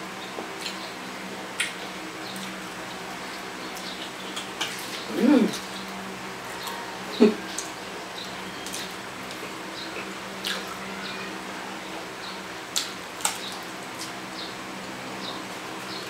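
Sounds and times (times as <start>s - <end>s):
person humming: 5.1s - 5.6s.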